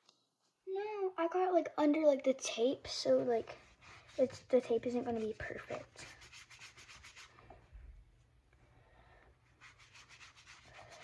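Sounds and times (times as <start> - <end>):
paintbrush strokes on board: 2.9 - 7.6, 9.4 - 11.0.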